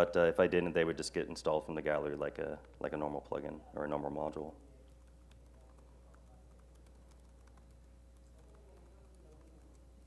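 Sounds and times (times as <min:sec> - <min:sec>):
low steady hum: 0:00.0 - 0:10.0
laptop keyboard typing: 0:04.6 - 0:10.0.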